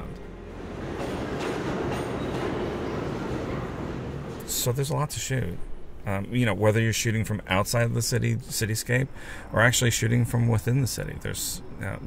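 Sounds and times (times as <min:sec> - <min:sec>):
train wheels rolling on steel rails: 0:00.0 - 0:04.7.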